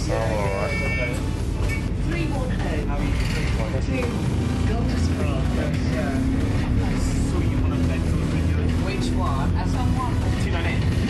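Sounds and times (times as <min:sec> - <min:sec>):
bus drivetrain hum: 0:00.0 - 0:11.0.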